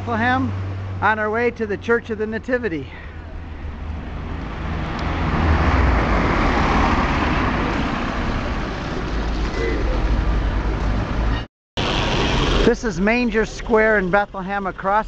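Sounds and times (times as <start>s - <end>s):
vehicle passing close by: 3.4s - 12.9s.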